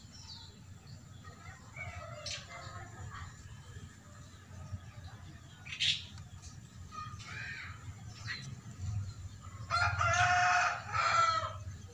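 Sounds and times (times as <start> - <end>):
rooster crowing: 9.7 - 11.6.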